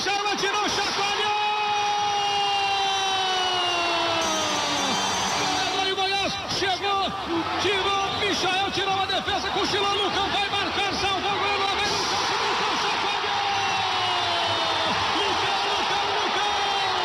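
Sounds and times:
fast excited commentary: 0.0 - 17.0.

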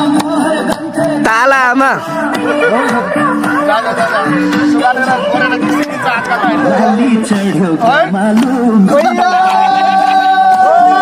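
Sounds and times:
music with held notes: 0.0 - 11.0
men talking and calling out: 0.4 - 11.0.

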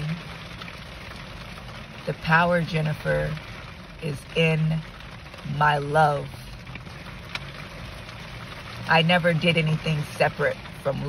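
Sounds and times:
rain on car windshield and roof: 0.0 - 11.0.

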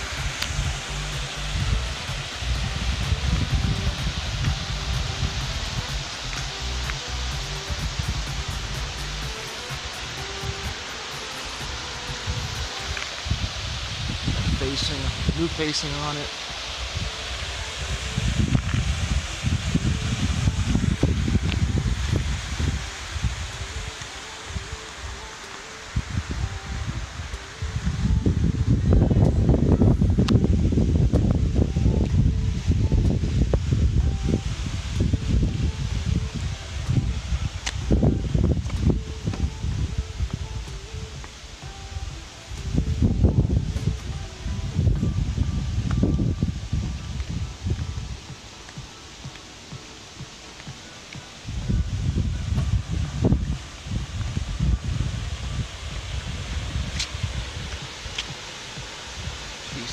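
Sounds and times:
wind buffeting microphone: 0.0 - 9.4, 11.6 - 25.3, 25.9 - 59.9
faint background music: 0.0 - 59.9.

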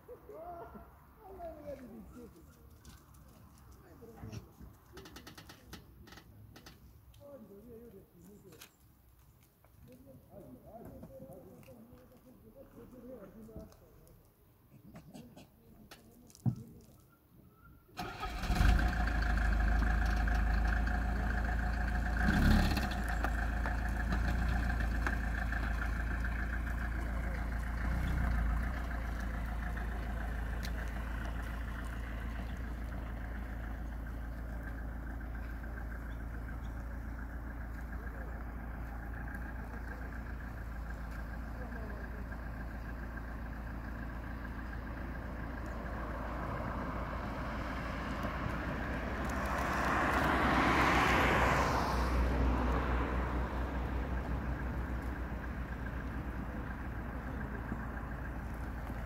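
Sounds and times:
engine rumbling: 0.0 - 59.0.

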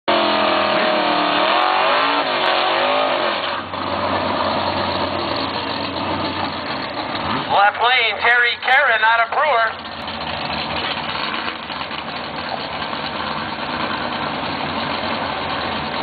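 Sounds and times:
car engine revving: 0.1 - 16.0
announcer voice over loudspeaker: 7.5 - 9.8.

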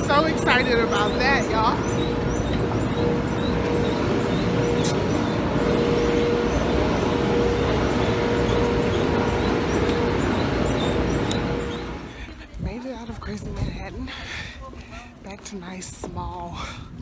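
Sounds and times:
mid-pitched hum: 0.0 - 13.8
train rumbling at a platform: 0.0 - 17.0.

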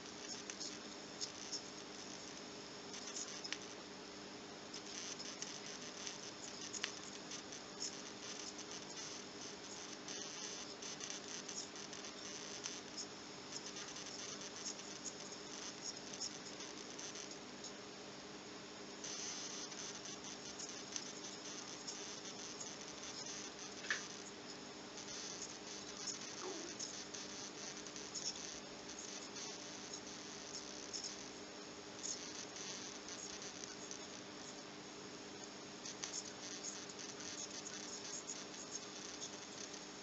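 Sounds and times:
faint steady hum: 0.0 - 40.0
radio crackle: 0.0 - 40.0.

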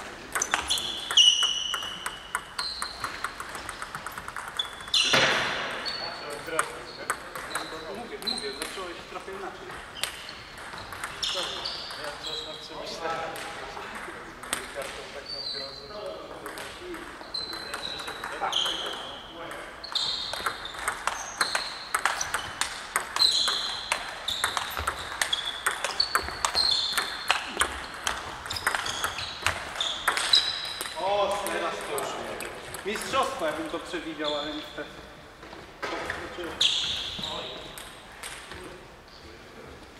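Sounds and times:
table tennis ball hits: 0.2 - 8.8, 9.7 - 12.0, 16.4 - 33.7.

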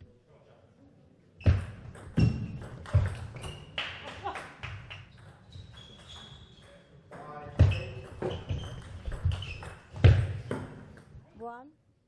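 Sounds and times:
shoes squeaking on floor: 1.4 - 3.8, 4.9 - 10.7
table tennis ball knocking: 1.5 - 3.7, 7.1 - 11.1.

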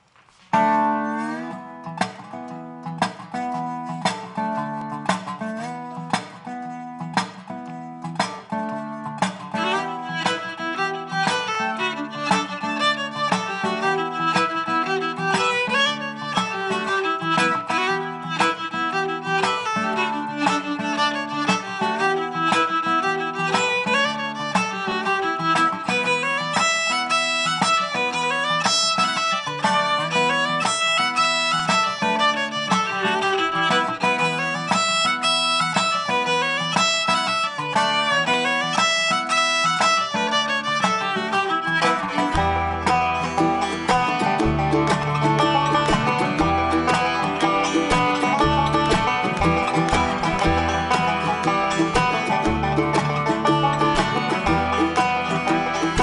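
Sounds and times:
acoustic bluegrass band playing: 0.4 - 56.0
fiddle melody: 0.4 - 56.0.

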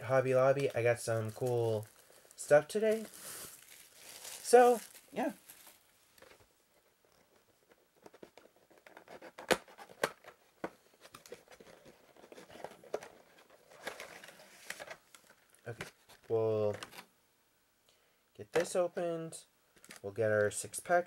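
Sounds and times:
plastic packaging crinkling: 0.6 - 6.4, 11.0 - 17.0.

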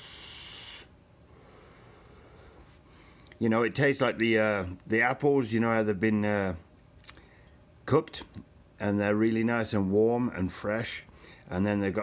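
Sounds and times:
breathy vaping hiss: 0.0 - 3.2.

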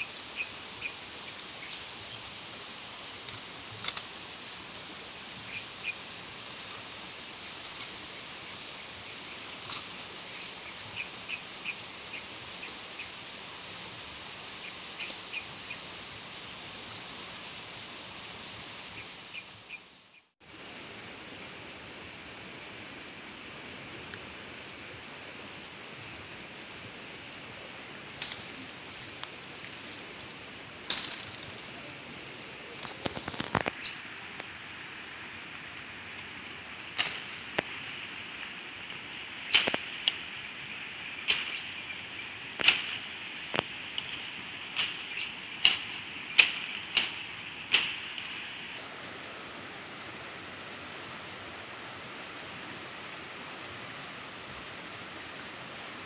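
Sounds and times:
river rushing: 0.0 - 19.8, 20.4 - 56.0
bamboo cracking as it is cut: 36.9 - 37.7, 39.5 - 40.2, 42.6 - 43.0.

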